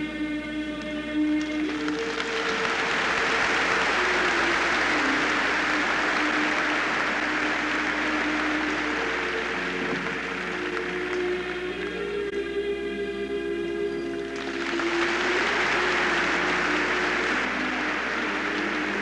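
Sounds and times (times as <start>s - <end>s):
background music: 0.0s - 19.0s
audience applauding: 1.4s - 12.0s, 14.3s - 19.0s.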